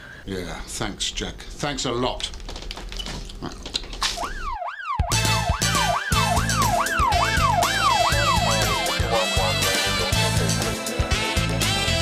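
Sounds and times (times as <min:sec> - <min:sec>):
police siren wailing: 0:04.2 - 0:09.7
theme music with heavy beat: 0:04.9 - 0:12.0.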